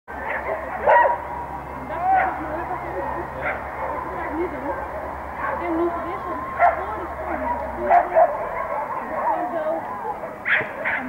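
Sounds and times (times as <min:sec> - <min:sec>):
dogs barking and yipping: 0:00.1 - 0:11.0
people chattering: 0:00.1 - 0:11.0.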